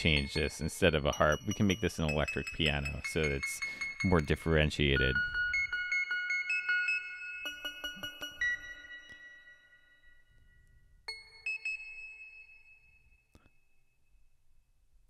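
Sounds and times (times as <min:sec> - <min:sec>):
high ringing keyboard-like notes: 0:00.0 - 0:14.1.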